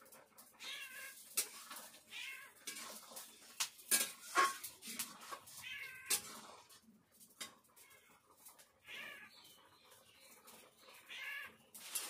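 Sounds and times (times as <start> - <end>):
cat meowing: 0.6 - 1.2, 2.1 - 2.6, 5.6 - 6.2, 8.8 - 9.3, 11.0 - 11.6.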